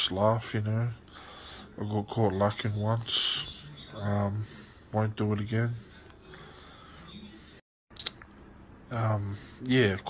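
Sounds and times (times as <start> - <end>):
man's voice: 0.0 - 6.0, 8.9 - 10.0
faint room hiss: 0.0 - 10.0.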